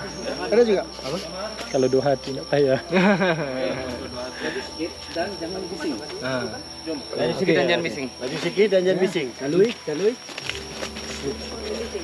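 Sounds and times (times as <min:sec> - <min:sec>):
high-pitched insect drone: 0:00.0 - 0:12.0
people talking indistinctly: 0:00.0 - 0:12.0.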